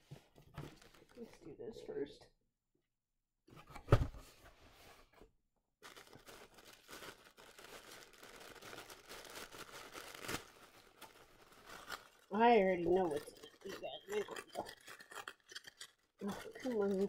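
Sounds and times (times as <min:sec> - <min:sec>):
tissue paper rustling and crinkling: 0:00.1 - 0:01.4, 0:05.8 - 0:17.0.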